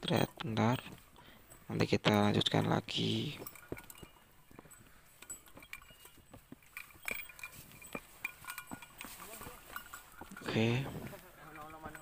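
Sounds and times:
footsteps on rocky trail: 0.1 - 12.0
gear clicking and knocking: 2.0 - 12.0.

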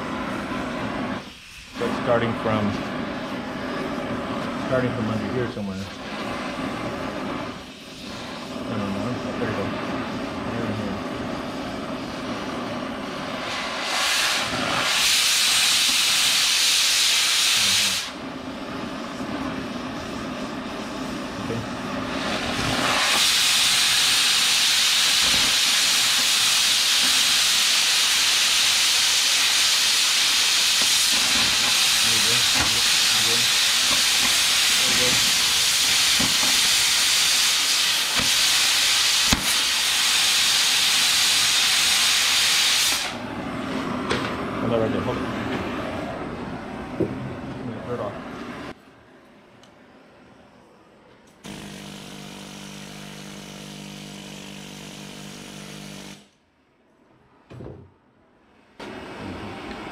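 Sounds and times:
cutting torch hissing: 0.0 - 48.8, 51.4 - 56.4, 58.8 - 59.9.

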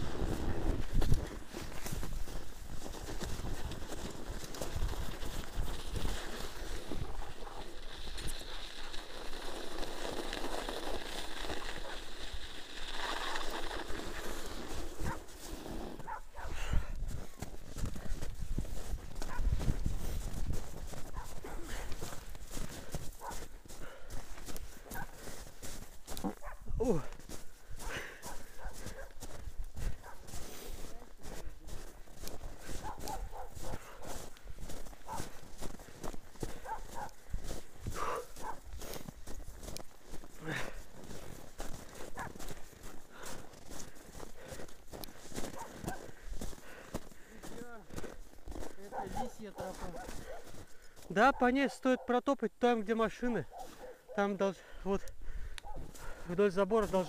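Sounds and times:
bicycle tyres hissing over snow: 0.0 - 51.2, 54.6 - 57.0
footsteps crunching in snow: 0.0 - 57.0.

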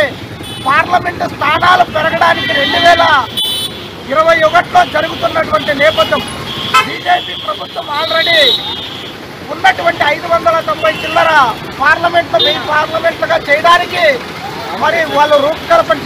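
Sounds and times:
man speaking into a microphone: 0.0 - 3.4, 4.0 - 8.7, 9.4 - 16.0
road traffic: 0.0 - 16.0
vehicle horn: 2.2 - 3.8, 4.8 - 9.2.

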